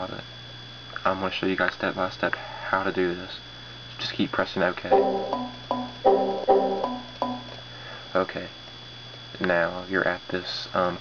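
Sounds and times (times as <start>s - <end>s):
computer alert chimes: 4.9s - 7.6s.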